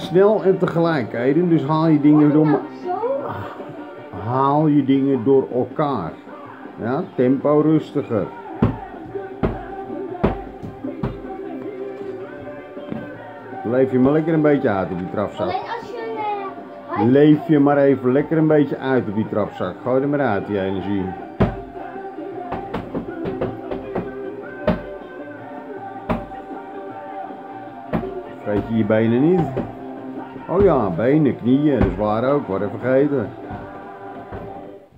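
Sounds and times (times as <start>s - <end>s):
music playing: 0.0s - 34.9s.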